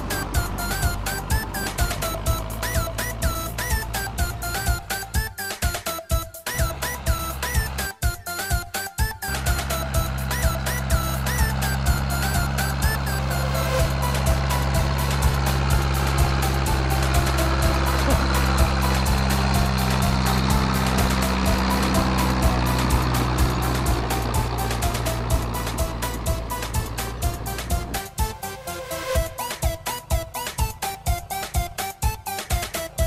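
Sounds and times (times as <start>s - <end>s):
tractor engine under load: 0.0s - 5.3s, 6.5s - 7.9s, 9.2s - 28.3s
music with steady beat: 0.0s - 33.0s.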